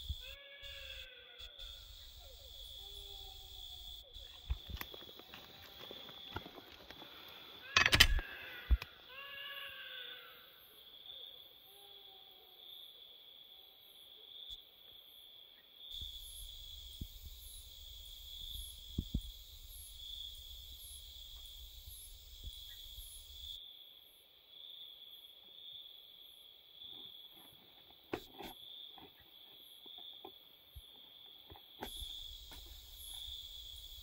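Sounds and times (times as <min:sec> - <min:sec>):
crickets chirping: 0:00.0 - 0:34.0.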